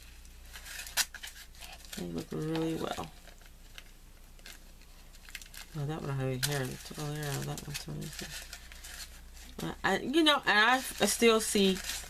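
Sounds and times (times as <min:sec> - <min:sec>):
plastic bags rustling and crinkling: 0:00.0 - 0:12.0.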